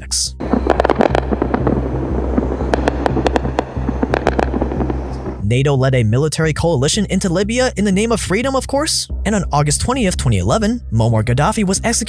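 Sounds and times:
steady low hum: 0.3s - 5.6s
anti-aircraft gunfire cracks: 0.5s - 1.8s, 2.5s - 5.4s.

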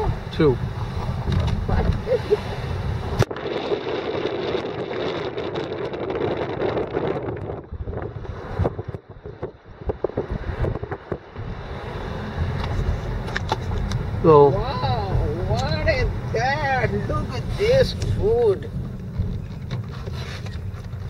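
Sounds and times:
car running noise: 0.0s - 21.0s
wind buffeting microphone: 0.0s - 21.0s.

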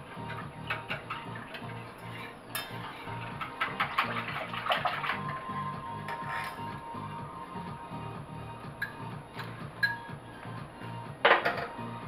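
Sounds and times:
whisk scraping against a pot: 0.0s - 6.8s
background music with steady beat: 0.0s - 12.0s.

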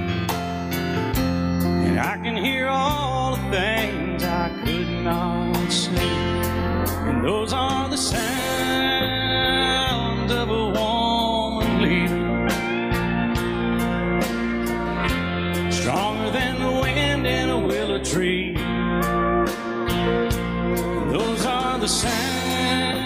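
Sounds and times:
instrumental country music: 0.0s - 23.0s
steel guitar sliding lines: 18.7s - 23.0s.

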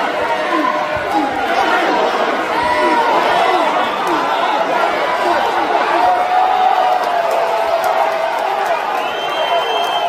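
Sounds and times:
crowd yelling and talking: 0.0s - 10.0s.

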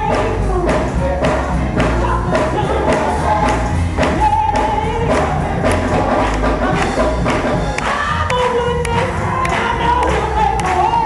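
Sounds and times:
gospel choir singing: 0.0s - 11.0s
instrumental accompaniment: 0.0s - 11.0s
percussive beat: 0.0s - 11.0s.

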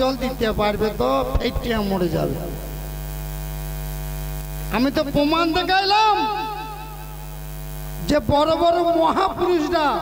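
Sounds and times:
man's voice: 0.0s - 2.7s, 4.7s - 7.2s, 8.0s - 10.0s
electrical mains hum: 0.0s - 10.0s.

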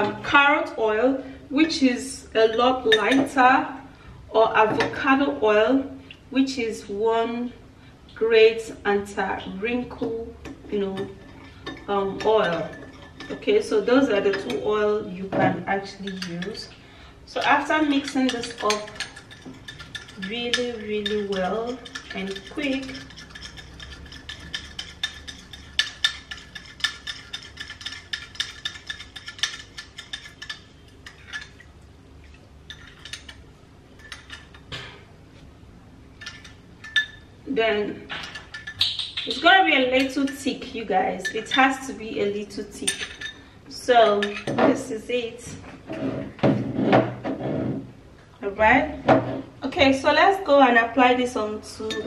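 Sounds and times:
spoon scraping against glass: 16.0s - 16.7s, 17.4s - 31.6s, 32.7s - 33.4s
spoon stirring thick paste: 17.8s - 31.6s.

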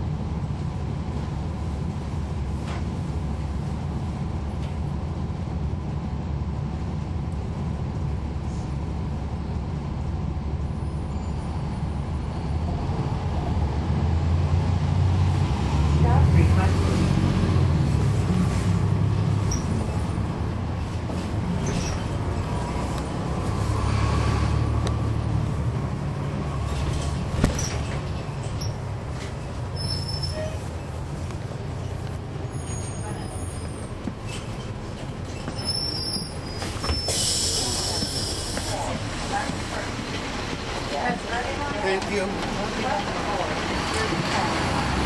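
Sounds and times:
diesel bus engine rumble: 0.0s - 45.0s.

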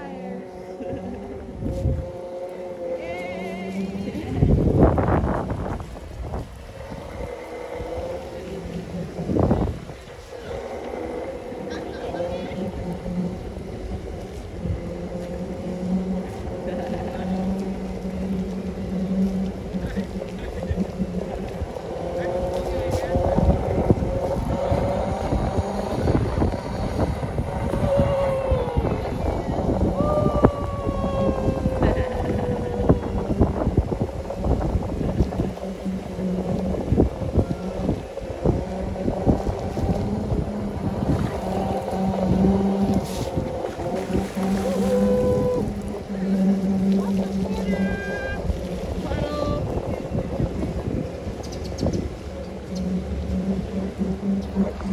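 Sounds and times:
electric motors whining: 0.0s - 54.9s
wind rumbling on microphone: 0.0s - 54.9s.

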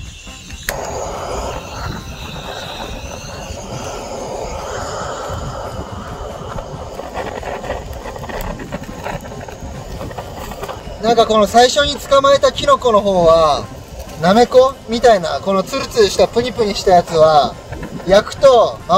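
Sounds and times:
torch flame hissing: 0.0s - 18.9s
torch ignition click: 0.2s - 8.6s.

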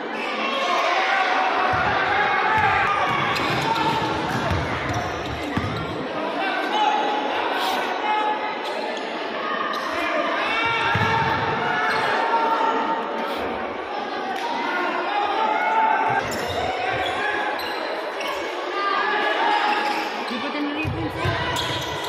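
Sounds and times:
crowd chatter and shouting: 0.0s - 22.0s.

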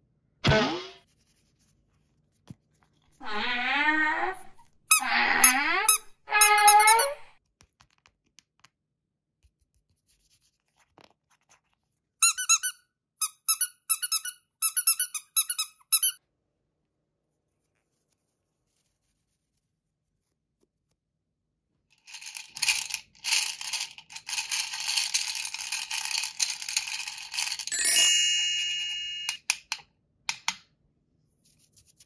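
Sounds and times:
squeaky rubber toy squeaking: 3.2s - 7.3s, 12.2s - 16.2s.

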